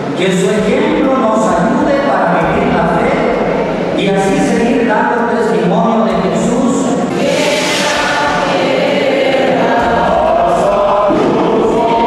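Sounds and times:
choir and congregation singing hymn: 0.0s - 12.0s.

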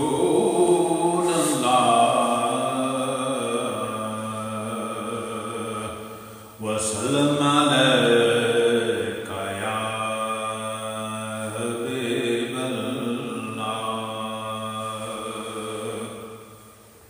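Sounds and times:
man chanting melodically: 0.0s - 16.4s.

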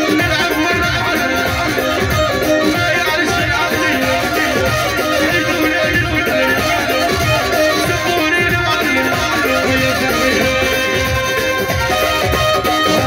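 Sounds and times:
amplified lead melody: 0.0s - 13.0s
drum kit beat: 0.0s - 13.0s
hand drums: 0.0s - 13.0s.

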